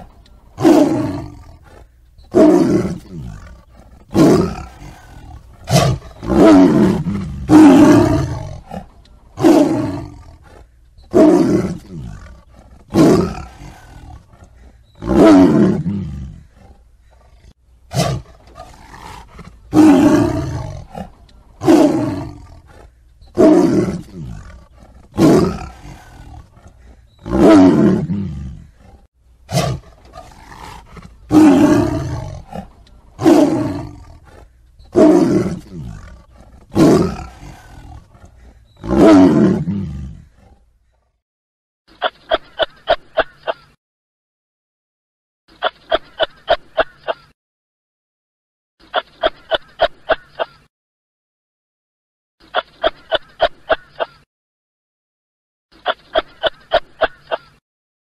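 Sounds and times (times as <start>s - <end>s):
lions roaring and snarling: 0.0s - 40.7s.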